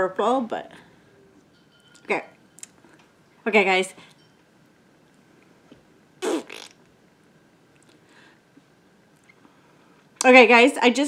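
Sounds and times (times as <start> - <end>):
woman blowing raspberry: 6.2 - 6.8.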